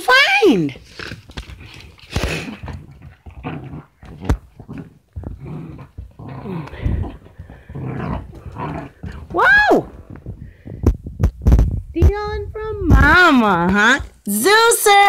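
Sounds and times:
dog growling in play: 0:00.9 - 0:10.5.

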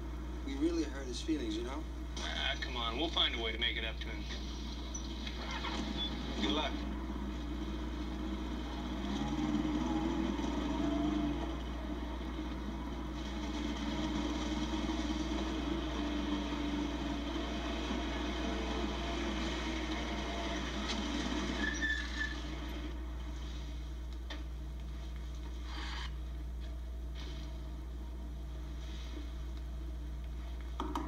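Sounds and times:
steady low hum: 0:00.0 - 0:31.0
motorcycle engines riding off: 0:04.6 - 0:23.1.

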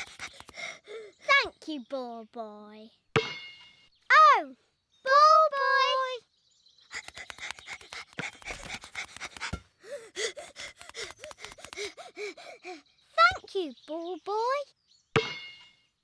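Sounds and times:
cartoon panting: 0:00.0 - 0:01.2, 0:06.9 - 0:13.3.

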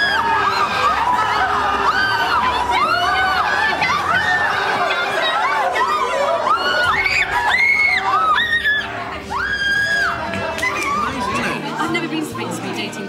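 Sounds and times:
people screaming in fright: 0:00.0 - 0:11.5
background music: 0:00.0 - 0:13.0.

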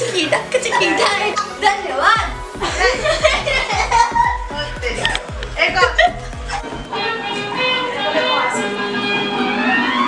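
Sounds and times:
dance music with heavy bass beat: 0:02.2 - 0:06.9
laughter: 0:02.6 - 0:04.5, 0:05.7 - 0:06.7
voices: 0:06.9 - 0:09.3.

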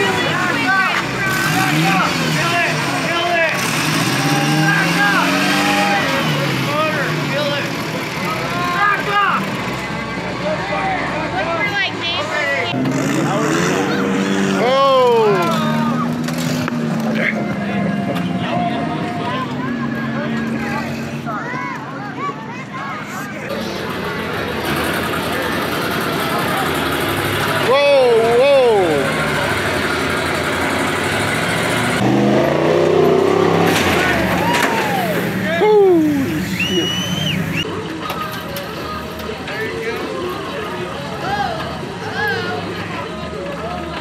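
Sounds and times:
onlookers shouting and whooping: 0:00.0 - 0:06.5, 0:33.3 - 0:37.7
buggy engine revving: 0:00.0 - 0:11.6, 0:12.6 - 0:21.5, 0:23.4 - 0:37.7.

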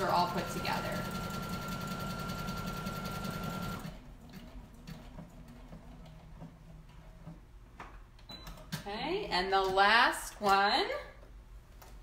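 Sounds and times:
sewing machine stitching: 0:00.0 - 0:06.3.

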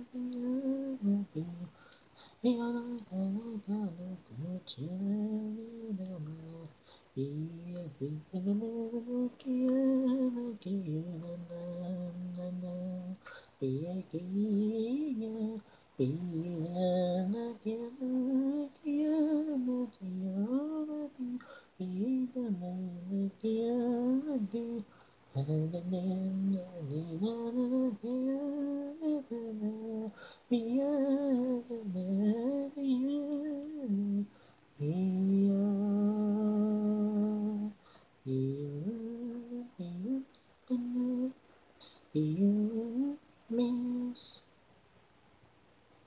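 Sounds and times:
person singing a cappella: 0:00.0 - 0:44.5.

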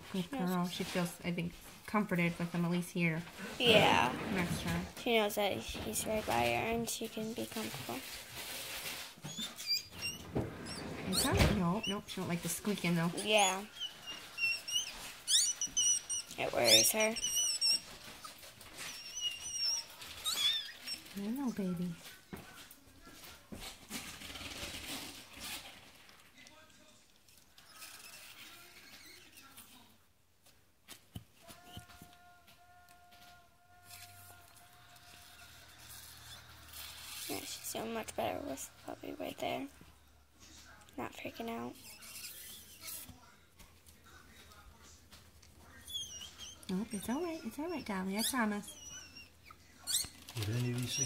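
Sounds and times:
puppy squeaking: 0:09.2 - 0:21.6, 0:41.5 - 0:43.1, 0:45.6 - 0:51.0.

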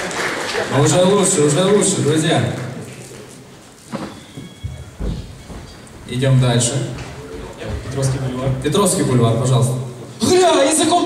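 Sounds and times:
audience applause: 0:00.0 - 0:03.4
hall noise: 0:01.6 - 0:11.0
short dull thumps: 0:03.9 - 0:08.6.

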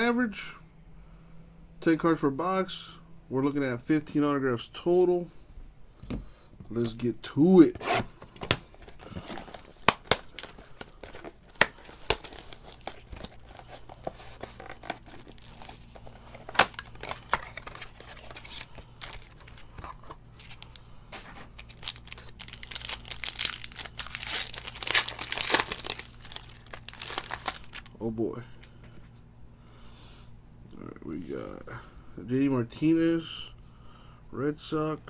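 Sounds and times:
foil wrapping crinkling and tearing: 0:08.6 - 0:20.8, 0:21.4 - 0:28.0.

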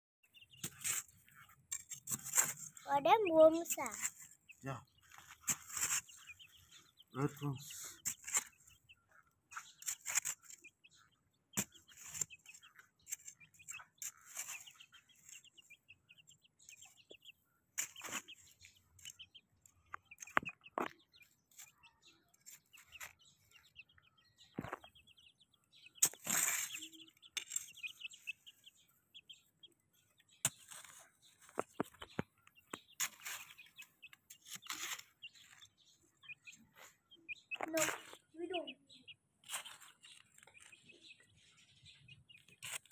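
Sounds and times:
chicks peeping: 0:00.2 - 0:42.9
scratching in dirt and gravel: 0:00.3 - 0:42.9.

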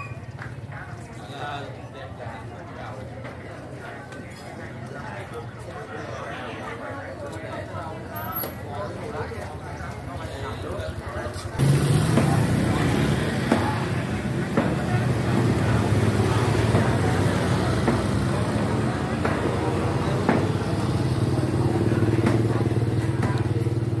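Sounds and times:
small motorbike engine idling: 0:10.7 - 0:24.0.

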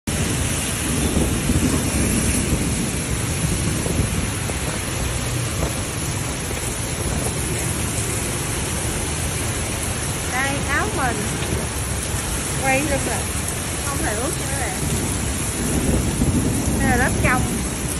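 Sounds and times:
heavy rain pouring: 0:00.0 - 0:17.9
deep rumble: 0:00.1 - 0:17.9.

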